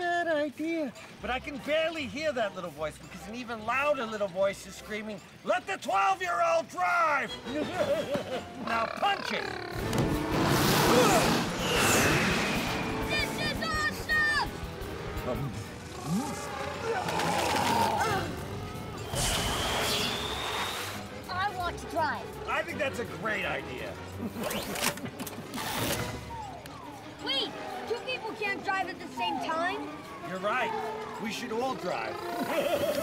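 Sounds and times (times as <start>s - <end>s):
orchestral film music: 1.1s - 33.0s
high steady whistle: 19.0s - 21.0s.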